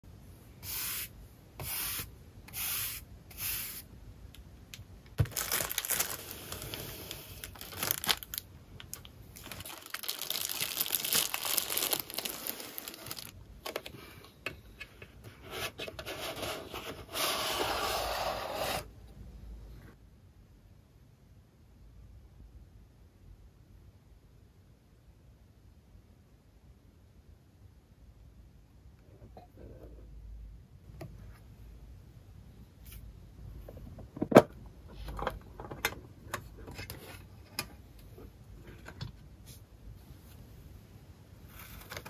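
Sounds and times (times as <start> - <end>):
plastic wrapping crinkling: 5.2 - 13.8.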